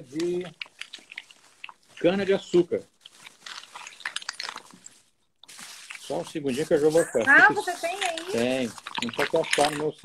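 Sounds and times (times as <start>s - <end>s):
corks rummaged in bag: 3.0s - 10.0s.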